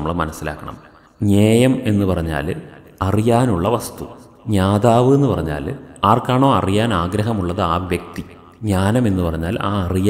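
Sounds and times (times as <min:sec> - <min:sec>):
man narrating: 0:00.0 - 0:10.0.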